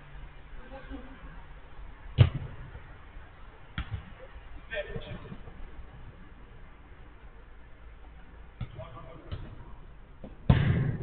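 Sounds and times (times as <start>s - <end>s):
faint background noise: 0.0s - 11.0s
football kicked hard: 2.2s - 2.6s, 3.8s - 4.1s, 10.2s - 11.0s.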